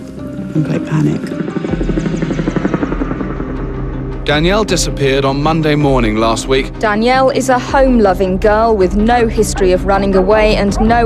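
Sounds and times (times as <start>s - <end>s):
helicopter rotor chop: 1.3s - 3.6s.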